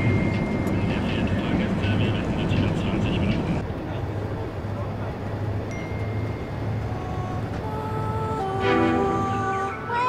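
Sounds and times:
bus rumbling inside cabin: 0.0 - 10.0.

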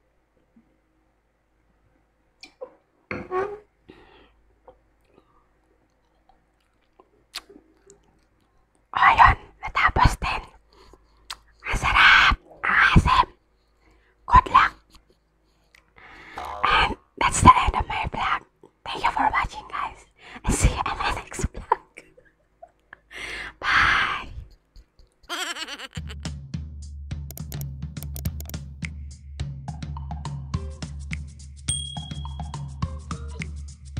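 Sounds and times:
woman speaking softly: 14.3 - 14.9.

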